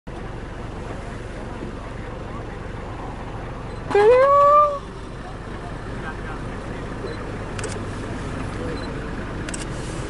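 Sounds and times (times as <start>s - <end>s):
vehicle engine idling: 0.1s - 10.0s.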